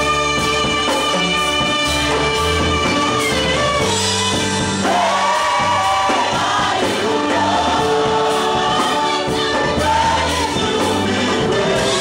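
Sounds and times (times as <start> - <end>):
band accompaniment: 0.0 - 12.0
gospel choir singing: 4.3 - 12.0.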